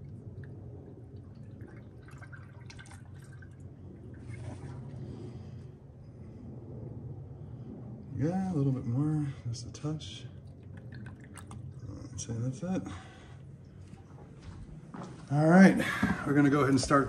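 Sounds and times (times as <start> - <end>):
liquid trickling into funnel: 0.0 - 5.1, 10.2 - 12.3
low hum: 0.0 - 17.0.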